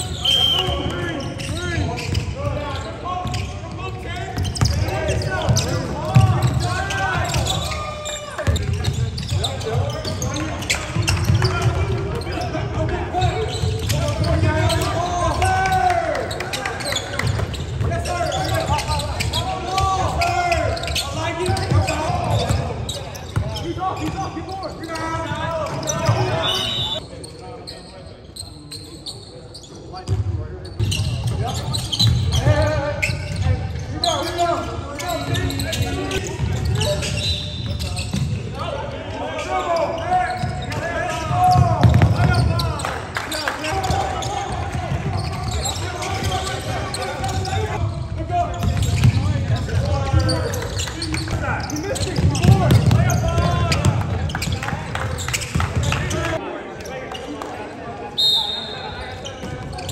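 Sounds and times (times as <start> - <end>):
players calling out: 0.0 - 27.1, 30.9 - 57.4
basketball bouncing: 41.5 - 42.4, 52.2 - 54.6.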